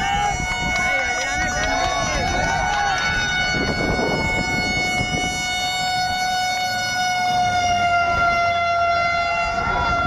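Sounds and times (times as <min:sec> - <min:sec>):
horn long steady note: 0:00.0 - 0:10.0.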